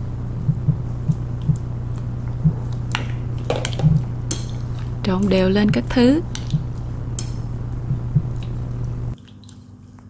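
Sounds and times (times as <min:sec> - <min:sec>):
steady low hum: 0:00.0 - 0:10.0
soft wet squishes: 0:07.9 - 0:10.0.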